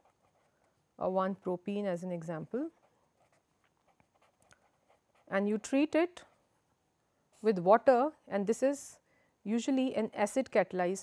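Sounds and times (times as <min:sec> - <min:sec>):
pen writing on paper: 0:00.0 - 0:00.6, 0:02.6 - 0:05.9.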